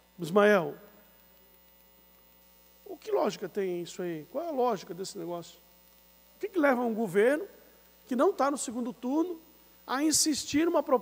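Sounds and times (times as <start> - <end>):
faint electrical hum: 0.0 - 11.0
man speaking: 0.2 - 0.9, 2.8 - 5.6, 6.4 - 11.0.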